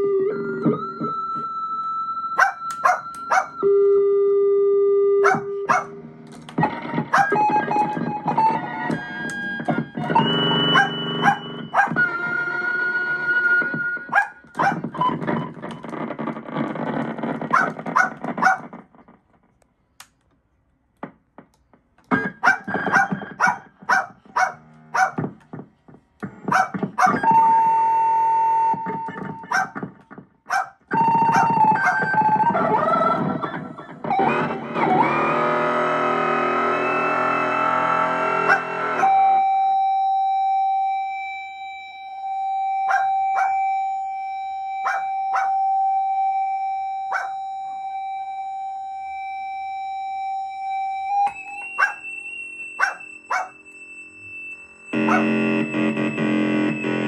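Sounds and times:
glitchy stuttering keyboard sounds: 0.0s - 3.7s, 5.2s - 19.6s, 21.0s - 39.9s, 42.0s - 49.2s, 50.2s - 57.0s
steady high tone: 0.0s - 15.8s, 30.9s - 57.0s
scattered clicks: 6.2s - 12.1s, 13.6s - 24.0s.

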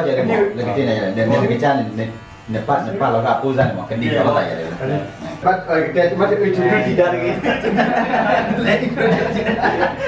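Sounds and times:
electric hair clippers buzzing: 0.0s - 10.0s
people talking: 0.0s - 10.0s.

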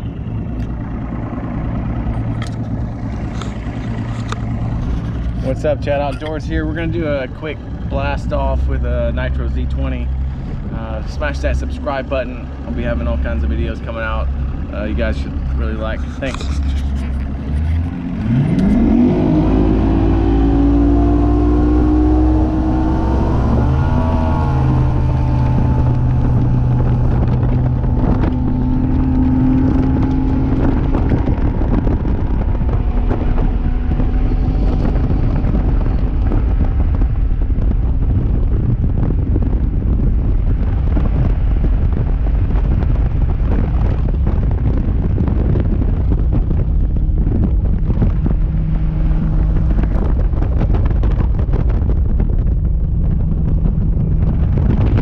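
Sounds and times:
outboard motor at full throttle: 0.0s - 55.0s
wind buffeting microphone: 0.0s - 55.0s.

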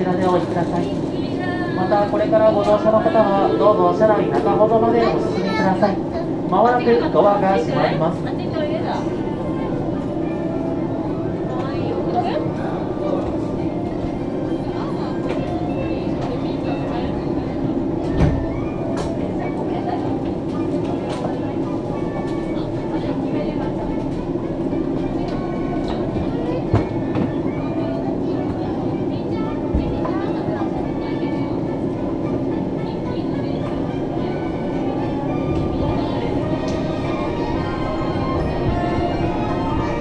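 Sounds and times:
faint voices: 0.0s - 40.0s
monorail equipment hum: 0.0s - 40.0s
train pulling out: 0.0s - 40.0s.

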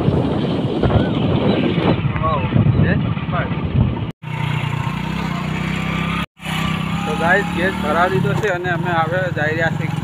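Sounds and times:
wind noise on microphone: 0.0s - 4.2s
motorcycle engine running: 3.0s - 10.0s.

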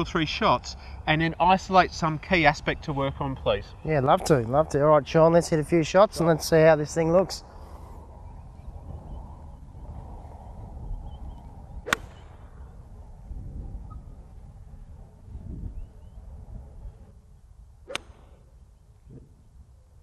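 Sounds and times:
golf club striking ball: 11.9s - 12.5s, 17.9s - 18.6s.

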